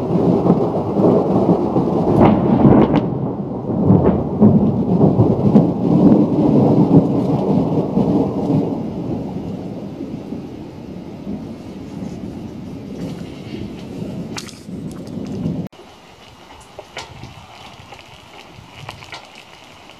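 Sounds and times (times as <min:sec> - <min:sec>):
thunder cracks: 0:00.0 - 0:19.9
thunder rumbling: 0:00.0 - 0:19.9.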